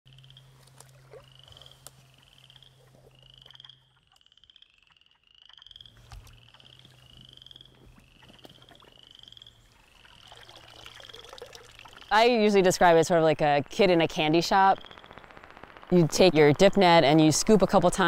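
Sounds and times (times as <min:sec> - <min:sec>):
frogs trilling chorus: 0:00.1 - 0:18.0
low steady hum: 0:00.1 - 0:18.0.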